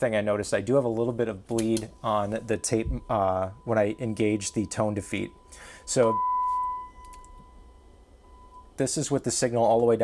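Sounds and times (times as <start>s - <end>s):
sine-wave test tone: 0.7s - 10.0s.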